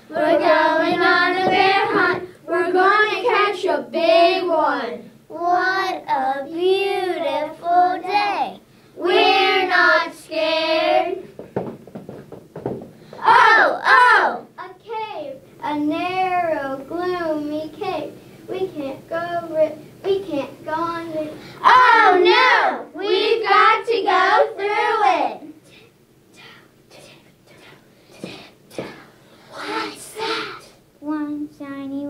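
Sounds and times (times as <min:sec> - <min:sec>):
sharp taps: 0:11.4 - 0:13.0
children chanting in unison: 0:21.6 - 0:25.3, 0:29.4 - 0:30.7.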